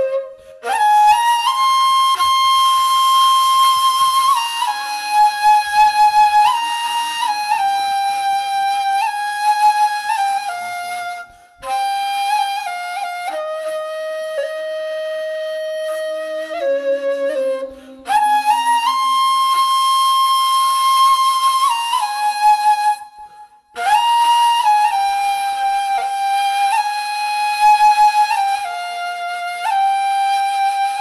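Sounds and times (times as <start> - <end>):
solo flute melody: 0.0 - 31.0.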